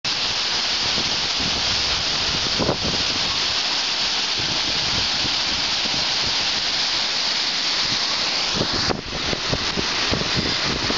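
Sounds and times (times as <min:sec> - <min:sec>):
water rushing down rock slab: 0:00.1 - 0:10.9.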